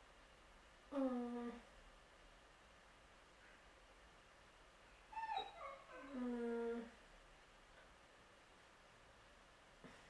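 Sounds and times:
high-pitched whimper: 5.1 - 7.0.

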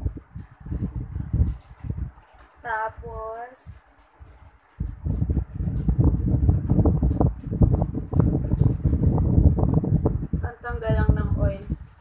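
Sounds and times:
low rumbling buffeting microphone: 0.0 - 12.0.

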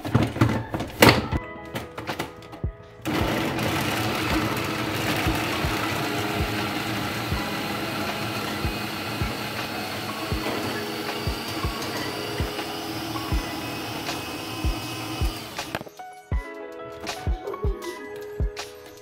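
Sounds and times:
food processor running: 3.1 - 15.8.

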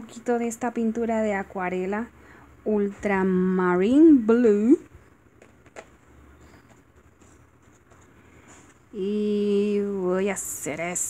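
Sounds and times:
handling art supplies: 5.3 - 9.0.

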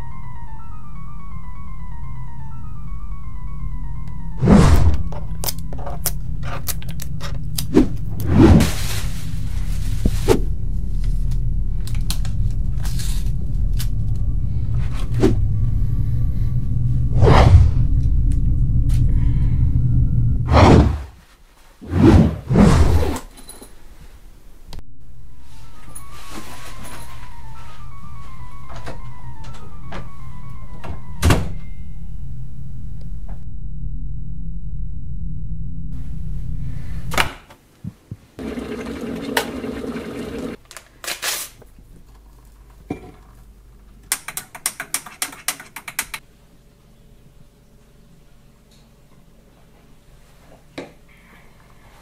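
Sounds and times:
low rumbling horror drone: 2.4 - 21.0, 31.7 - 37.2
whoosh: 4.4 - 5.1, 7.7 - 21.2, 21.8 - 23.2
kettle heating hiss: 38.4 - 40.6.

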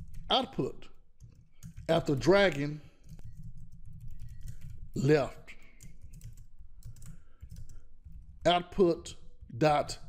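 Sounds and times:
typing on computer keyboard: 0.0 - 0.3, 1.2 - 8.5.

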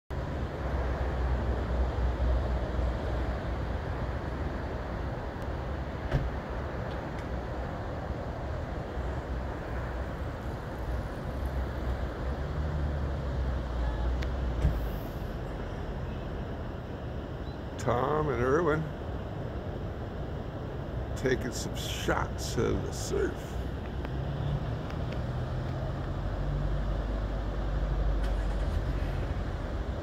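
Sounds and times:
ocean surf breaking: 0.3 - 30.0.

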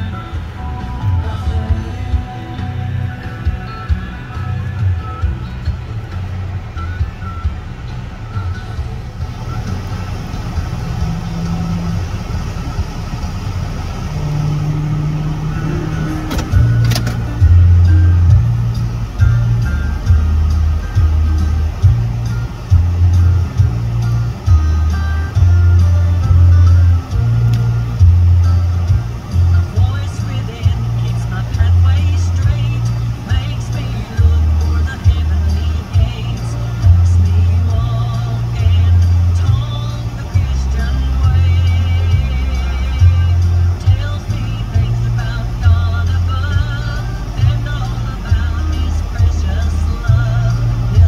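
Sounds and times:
music on car radio: 0.0 - 51.0.

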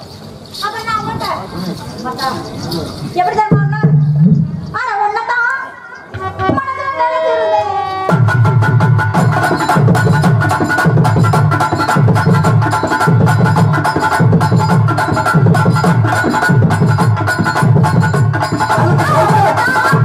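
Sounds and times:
drums and tabla beat: 0.6 - 4.9, 6.1 - 6.8, 8.1 - 20.0
band playing dance music: 8.0 - 20.0
sharp percussion hits: 8.1 - 20.0.

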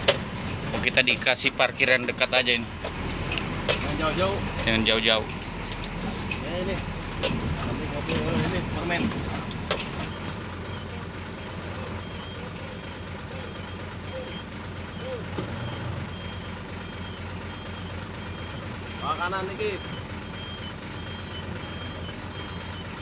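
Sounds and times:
truck diesel engine running: 0.0 - 23.0
man speaking: 3.8 - 5.3, 18.9 - 20.0
reversing alarm beeping: 9.7 - 23.0.

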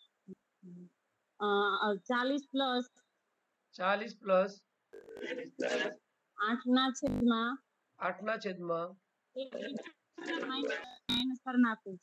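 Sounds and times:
person speaking: 5.2 - 8.6, 9.4 - 11.3.

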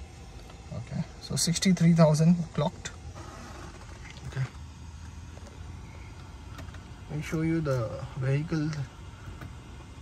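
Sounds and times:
low steady hum inside car: 0.0 - 10.0.

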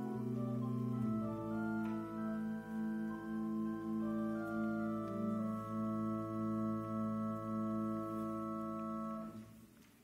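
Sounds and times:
church organ chord: 0.0 - 9.6.

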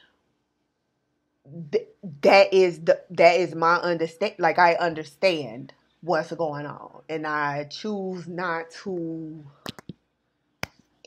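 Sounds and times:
woman speaking: 1.5 - 9.7.

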